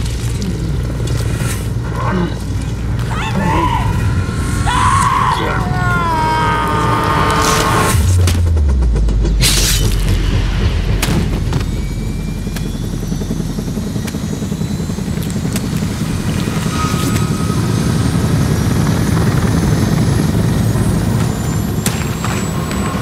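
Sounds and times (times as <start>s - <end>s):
helicopter rotors running: 0.0s - 23.0s.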